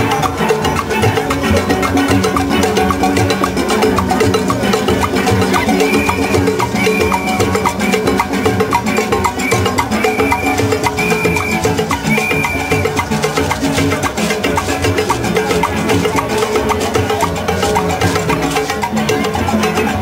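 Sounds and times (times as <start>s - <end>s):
clicking percussion beat: 0.0s - 20.0s
steel pans playing fast tune: 0.0s - 20.0s
brief high tones: 8.8s - 13.0s.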